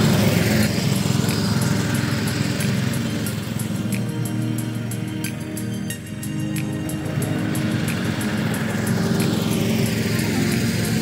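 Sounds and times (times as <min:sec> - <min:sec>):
high whine: 0:00.0 - 0:11.0
reel mower running: 0:00.0 - 0:11.0.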